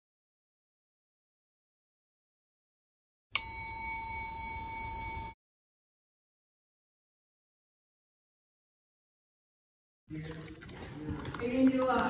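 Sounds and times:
bright chime ding: 3.4s - 5.4s.

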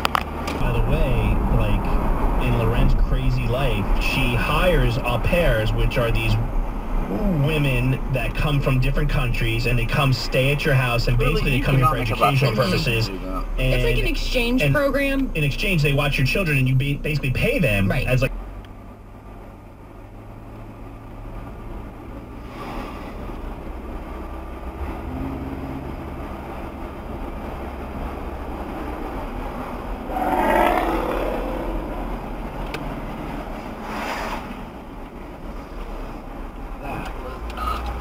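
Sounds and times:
car engine and road hum: 0.0s - 38.0s.

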